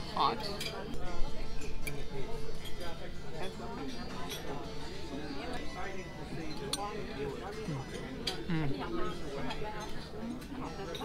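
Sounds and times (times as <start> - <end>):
murmur of diners' voices: 0.0 - 11.0.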